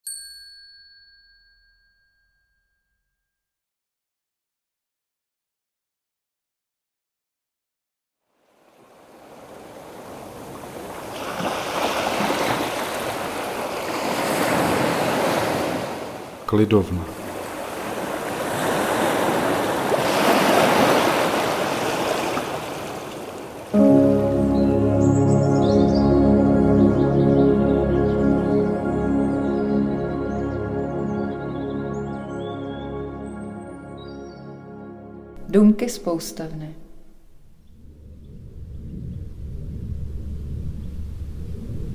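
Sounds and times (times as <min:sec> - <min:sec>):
high metallic bell ding: 0:00.0 - 0:03.3
surf breaking on rocks: 0:08.5 - 0:16.5, 0:17.1 - 0:23.8
calm music of layered chords: 0:23.8 - 0:35.4.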